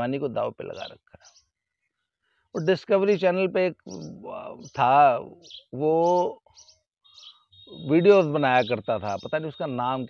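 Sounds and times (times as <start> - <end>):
man speaking: 0.0 - 1.2, 2.6 - 6.4, 7.7 - 10.0
faint bird chirps: 0.6 - 10.0.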